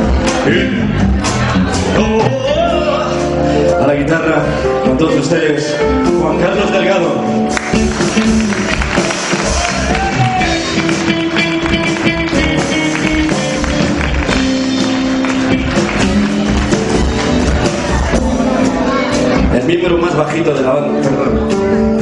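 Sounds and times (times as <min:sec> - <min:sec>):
live rock and roll band: 0:00.0 - 0:22.0
electric guitar: 0:07.5 - 0:19.6.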